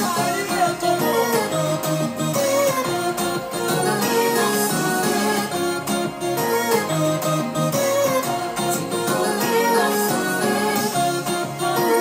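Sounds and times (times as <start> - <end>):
keyboard chords and melody: 0.0 - 12.0.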